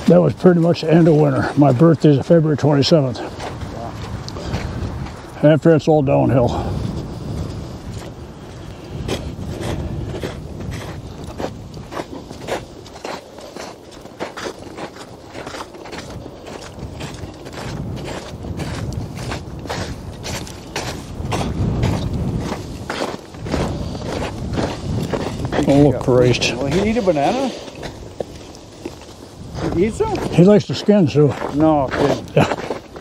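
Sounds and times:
footsteps on snow: 0:00.0 - 0:33.0.

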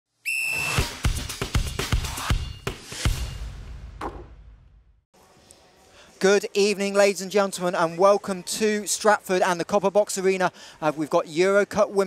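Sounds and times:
whistle blast: 0:00.2 - 0:00.9.

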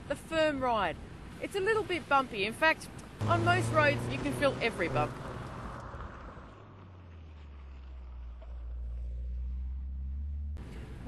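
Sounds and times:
car driving on gravel: 0:03.2 - 0:11.0.

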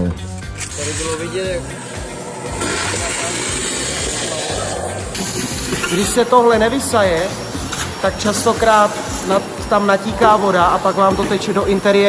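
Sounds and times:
vacuum cleaner hose sucking: 0:00.5 - 0:12.0.

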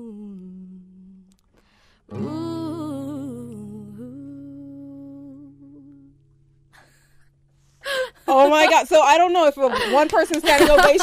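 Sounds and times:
woman humming: 0:00.0 - 0:01.3, 0:02.2 - 0:06.2
acoustic guitar ringing: 0:02.1 - 0:09.5
person speaking: 0:08.3 - 0:11.0.

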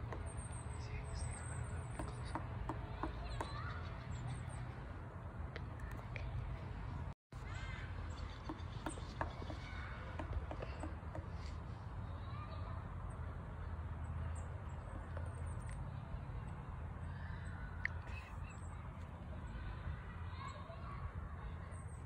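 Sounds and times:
faint distant voices: 0:00.0 - 0:22.0
light taps: 0:08.2 - 0:11.6.

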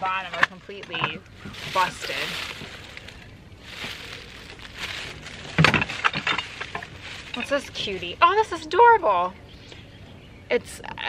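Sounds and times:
plastic bag rustling: 0:01.3 - 0:08.6
dishes and broken glass clattering: 0:05.6 - 0:07.6.

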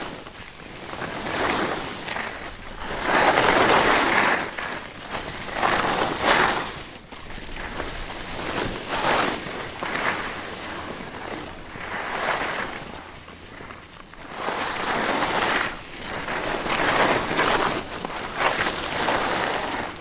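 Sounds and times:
skis scraping on snow: 0:00.0 - 0:20.0.

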